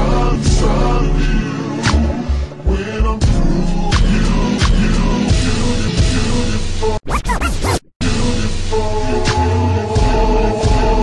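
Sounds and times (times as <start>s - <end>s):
record scratch: 7.0s - 7.9s.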